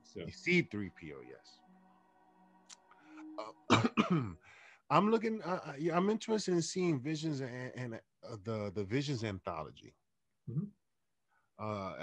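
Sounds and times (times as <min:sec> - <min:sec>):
man coughing: 0:03.4 - 0:04.4.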